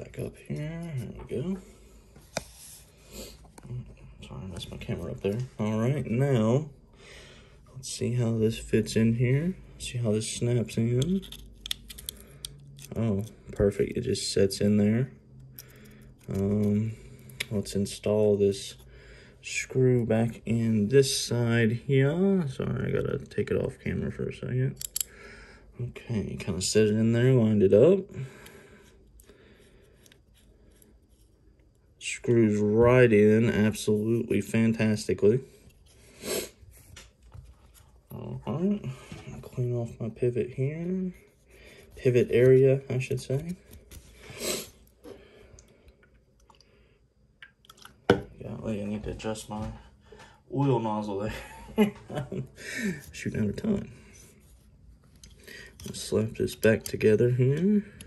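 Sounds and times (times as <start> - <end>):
soft scrape: 2.2 - 3.4
screwdriver clicks and scrapes: 11.0 - 13.3.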